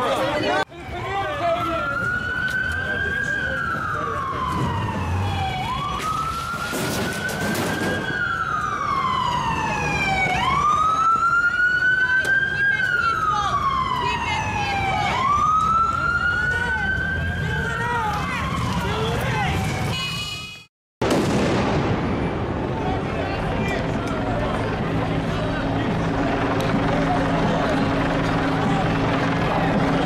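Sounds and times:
police siren wailing: 0.2s - 20.3s, 23.0s - 30.0s.

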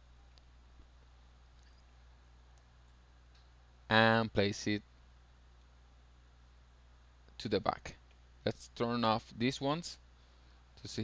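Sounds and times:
low electrical hum: 0.0s - 11.0s
man talking: 3.9s - 4.8s, 7.4s - 10.0s, 10.8s - 11.0s.

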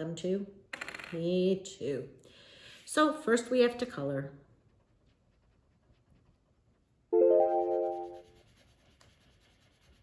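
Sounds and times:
rising keyboard notes flourish: 7.1s - 8.2s.

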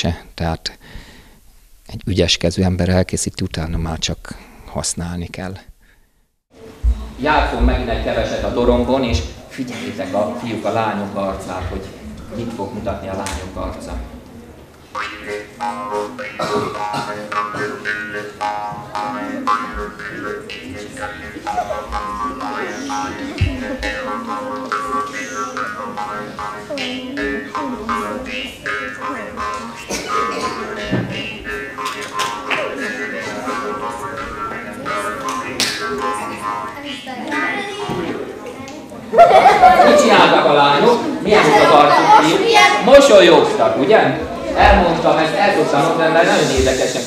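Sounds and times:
jaw harp twanging: 14.9s - 36.8s.

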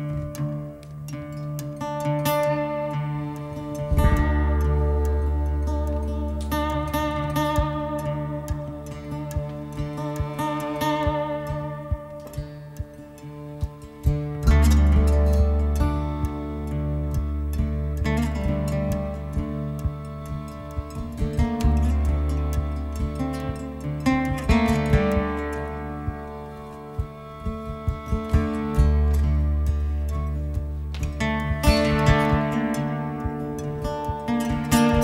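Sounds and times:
acoustic guitars: 0.0s - 35.0s
violin wavering notes: 0.0s - 35.0s
low thump: 3.9s - 5.2s.

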